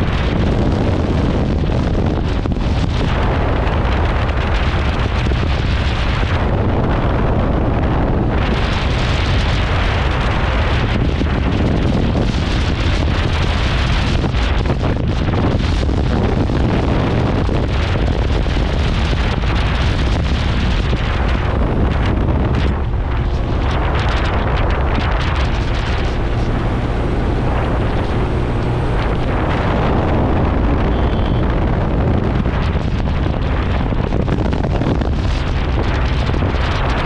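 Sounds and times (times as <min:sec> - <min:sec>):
wind buffeting microphone: 0:00.0 - 0:37.0
motorcycle engine running: 0:19.6 - 0:36.5.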